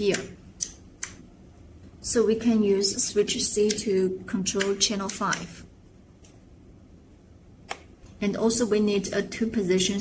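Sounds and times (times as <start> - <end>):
toggle switch clicks: 3.6 - 3.9, 4.5 - 5.5.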